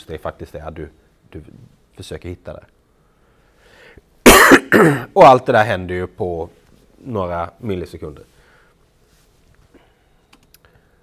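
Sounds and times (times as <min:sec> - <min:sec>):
faint breath: 0:03.0 - 0:04.1, 0:08.3 - 0:08.9, 0:09.7 - 0:11.0
man coughing: 0:04.3 - 0:05.2.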